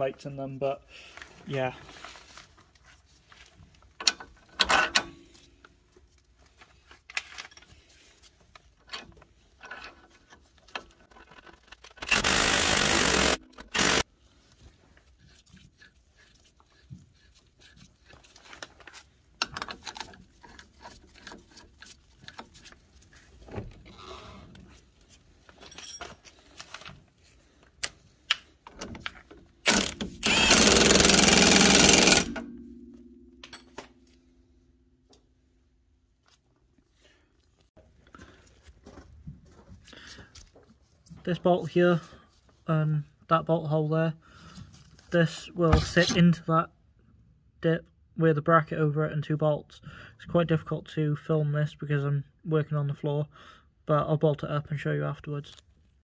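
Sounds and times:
impact wrench: 0:12.0 - 0:14.0, 0:29.6 - 0:33.9
hand tools clinking and knocking: 0:15.4 - 0:22.7, 0:25.5 - 0:26.6, 0:30.6 - 0:34.4.

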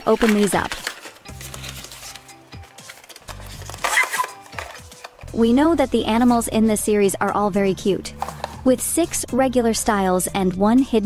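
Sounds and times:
cardboard rustling: 0:00.0 - 0:05.2
background music: 0:00.0 - 0:11.0.

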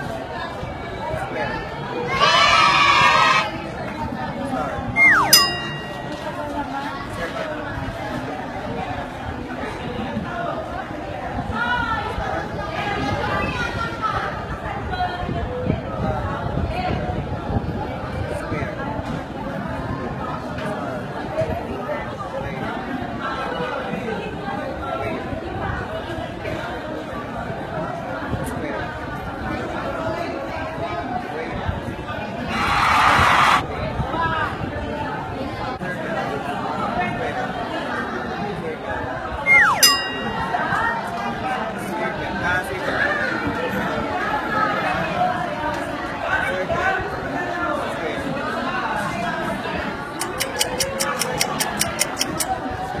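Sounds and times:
indistinct chatter of voices: 0:00.0 - 0:53.0.

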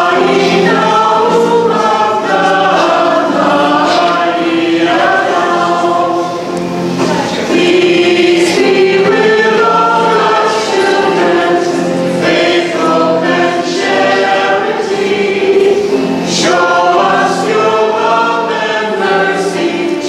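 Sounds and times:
choir singing a hymn: 0:00.0 - 0:20.0.

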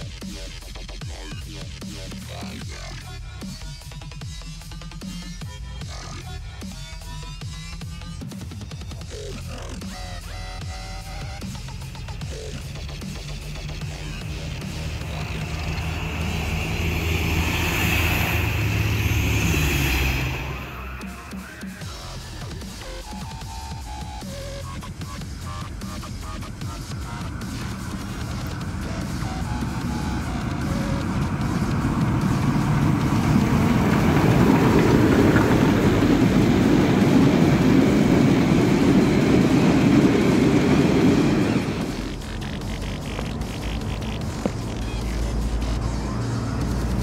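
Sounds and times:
diesel train engine running: 0:00.0 - 0:47.0.

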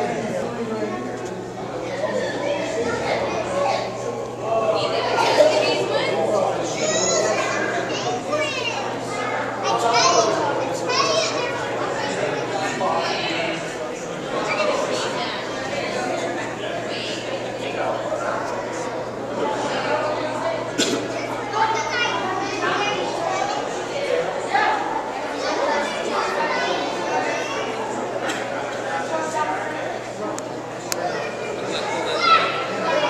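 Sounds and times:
children chattering: 0:00.0 - 0:33.0.

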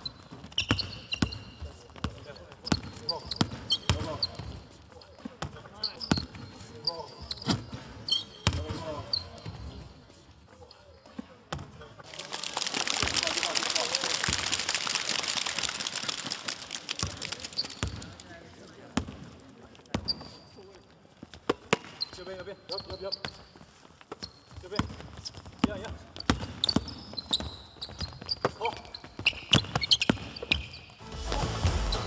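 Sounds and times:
sneaker squeaks: 0:00.0 - 0:11.9, 0:17.0 - 0:31.0
crowd noise: 0:10.6 - 0:19.8, 0:31.0 - 0:32.0.

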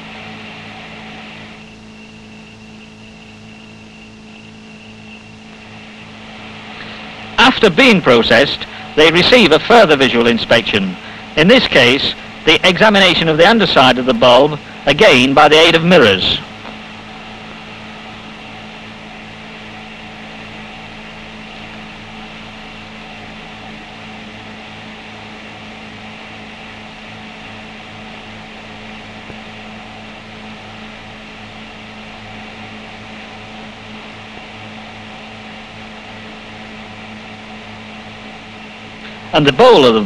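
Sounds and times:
low hum with fixed tones: 0:00.0 - 0:40.0.

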